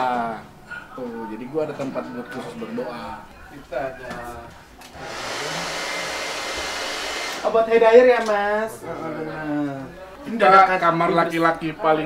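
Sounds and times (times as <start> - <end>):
hair dryer blowing: 5.0 - 7.6.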